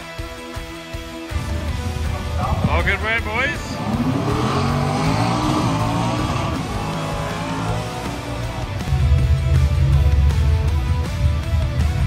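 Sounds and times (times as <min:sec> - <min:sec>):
music: 0:00.0 - 0:12.0
car engine revving: 0:02.2 - 0:10.6.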